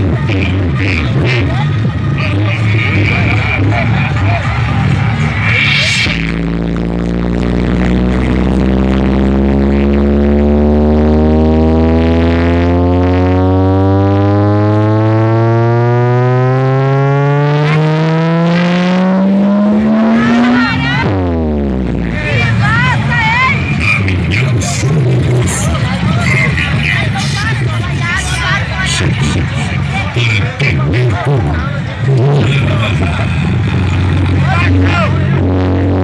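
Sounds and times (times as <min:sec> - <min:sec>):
buzzy rising drone from speakers: 0:00.0 - 0:30.2, 0:31.3 - 0:36.0
crowd noise: 0:00.0 - 0:36.0.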